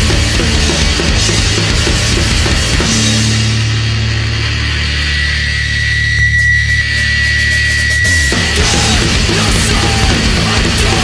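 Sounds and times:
distorted punk music: 0:00.0 - 0:11.0
high-pitched ringing tone: 0:04.6 - 0:08.6.

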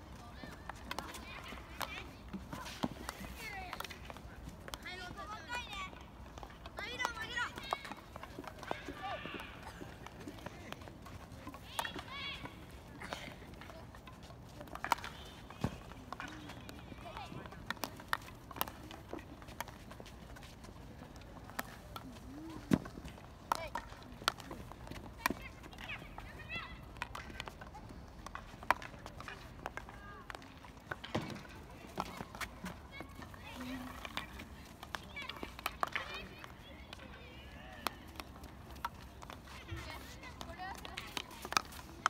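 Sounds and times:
hockey sticks striking ball: 0:00.7 - 0:20.1, 0:21.5 - 0:27.6, 0:28.2 - 0:42.0.

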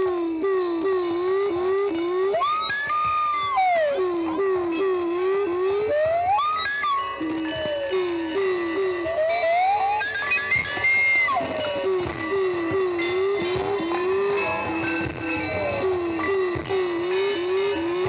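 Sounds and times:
low warbling electronic tone: 0:00.0 - 0:18.0.

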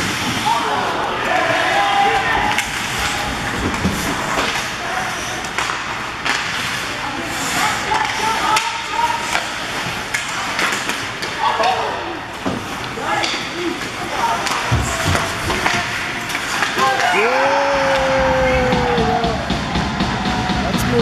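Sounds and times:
hockey sticks and puck clacking: 0:01.3 - 0:19.8
spectators calling out: 0:16.8 - 0:21.0.

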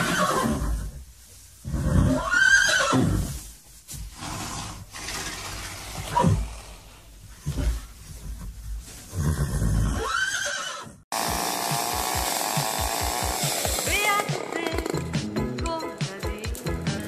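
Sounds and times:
horse whinnying: 0:00.0 - 0:01.0, 0:01.6 - 0:03.4, 0:04.2 - 0:07.6, 0:09.1 - 0:11.0
music with steady beat: 0:11.2 - 0:17.0.

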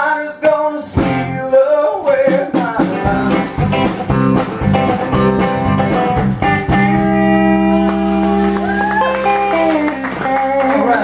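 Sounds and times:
strummed acoustic guitar: 0:00.8 - 0:08.6
electric guitar bending notes: 0:02.8 - 0:11.0.

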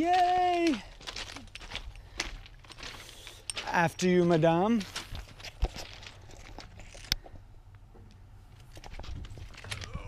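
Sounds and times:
footsteps on gravel: 0:00.0 - 0:07.2.

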